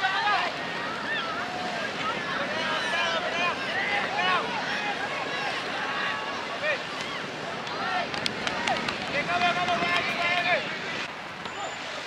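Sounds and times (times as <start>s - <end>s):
voices shouting: 0.0s - 10.7s.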